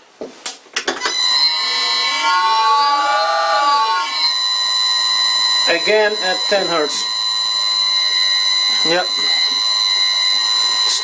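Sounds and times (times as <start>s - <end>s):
lathe motor whine: 1.1s - 11.0s.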